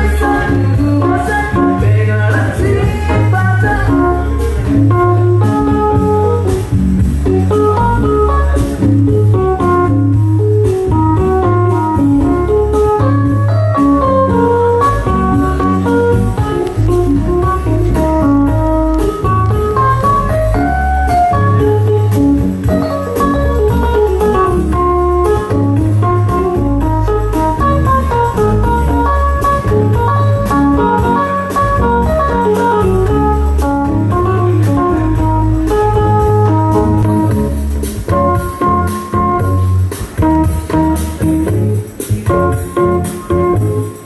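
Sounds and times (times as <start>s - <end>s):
keyboard lead line: 0.0s - 44.0s
low bass line: 0.0s - 44.0s.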